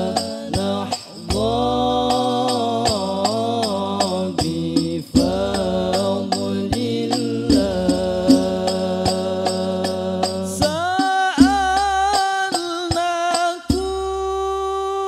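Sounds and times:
frame drums striking: 0:00.0 - 0:14.2
man singing into a microphone: 0:00.0 - 0:15.0.

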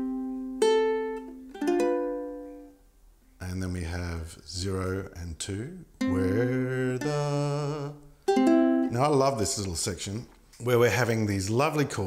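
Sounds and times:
ukulele notes plucked: 0:00.0 - 0:02.8, 0:06.0 - 0:09.1.

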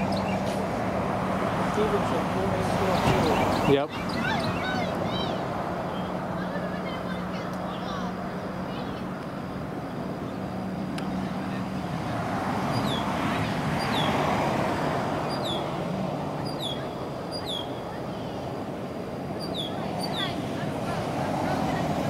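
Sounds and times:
street noise low hum: 0:00.0 - 0:22.0
vehicle passing: 0:00.0 - 0:22.0.

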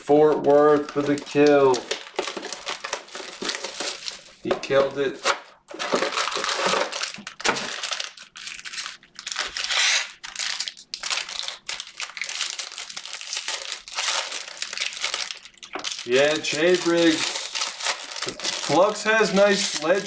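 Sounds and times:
foil wrappers crinkling: 0:00.0 - 0:20.0
pack tearing open: 0:00.4 - 0:04.4, 0:05.2 - 0:20.0.

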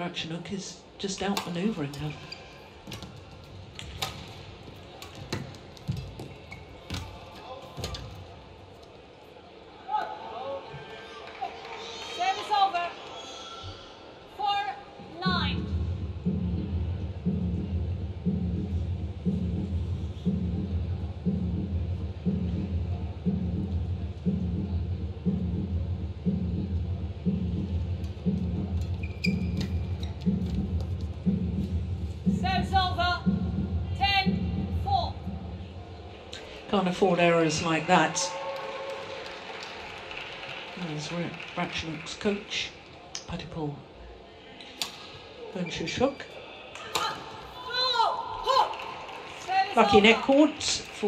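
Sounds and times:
arena music with low beat: 0:15.0 - 0:38.7
shoe squeaks on court: 0:29.0 - 0:30.3.

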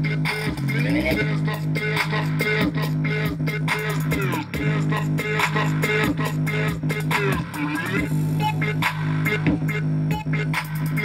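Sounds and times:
bass-heavy music from small speaker: 0:00.0 - 0:11.0.

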